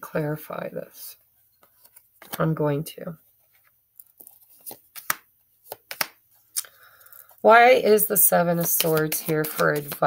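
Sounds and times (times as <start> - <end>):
cards being shuffled by hand: 4.0 - 6.2, 8.5 - 10.0.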